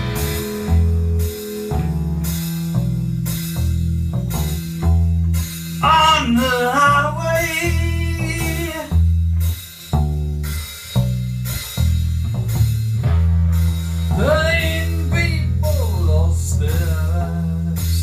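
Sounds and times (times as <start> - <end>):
electric guitar: 0.0 - 15.7
drum kit: 0.0 - 18.0
electric bass line: 0.0 - 18.0
person singing: 5.8 - 9.0, 14.1 - 18.0.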